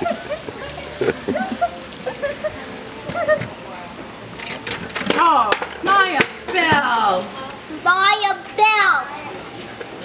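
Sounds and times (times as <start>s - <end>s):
child's high-pitched voice: 7.8s - 9.4s.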